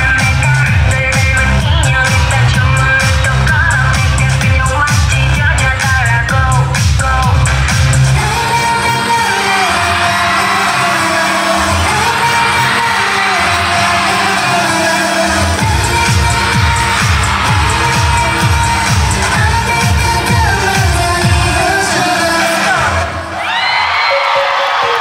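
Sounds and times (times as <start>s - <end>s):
pop dance song with female vocals: 0.0s - 23.7s.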